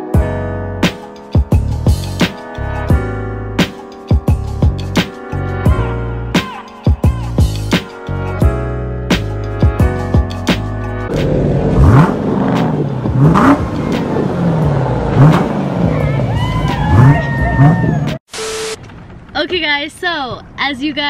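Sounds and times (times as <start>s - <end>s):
music: 0.0s - 11.4s, 12.5s - 18.2s
car engine revving: 11.1s - 18.2s
short beep: 18.3s - 18.8s
person talking: 19.4s - 21.0s.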